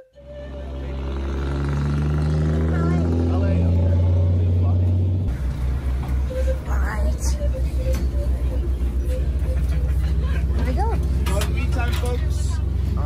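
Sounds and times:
truck engine rumbling: 0.0s - 13.0s.

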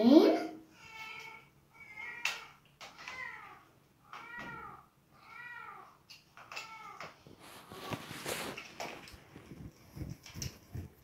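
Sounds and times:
cat meowing: 0.8s - 7.1s.

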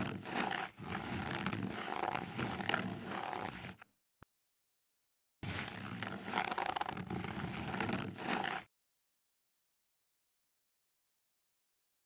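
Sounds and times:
tool scraping skin: 0.0s - 3.8s, 5.5s - 8.7s.

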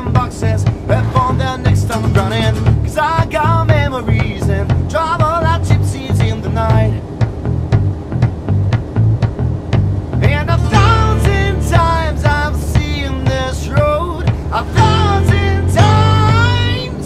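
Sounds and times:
man singing: 0.0s - 7.1s, 10.2s - 17.0s
pop band playing: 0.0s - 7.4s, 9.8s - 17.0s.

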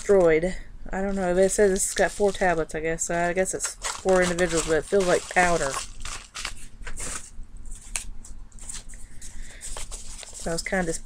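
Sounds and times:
plastic packet crinkling: 1.1s - 2.7s, 3.5s - 11.0s.

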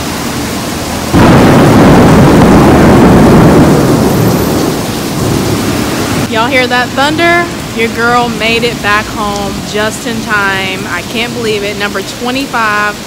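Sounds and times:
steady rain: 0.0s - 13.0s
thunder rumbling: 0.7s - 12.0s.

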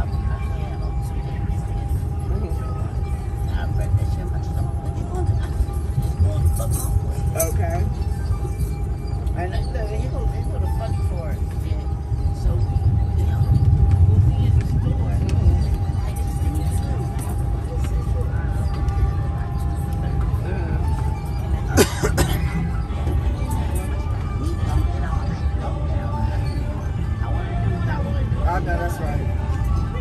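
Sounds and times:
low rumble: 0.0s - 21.8s
music playing: 0.0s - 30.0s
people's voices: 0.0s - 30.0s.

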